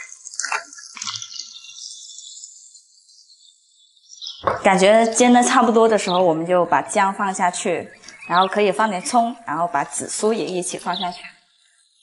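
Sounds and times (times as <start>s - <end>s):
crabs frying in oil: 0.0s - 2.5s.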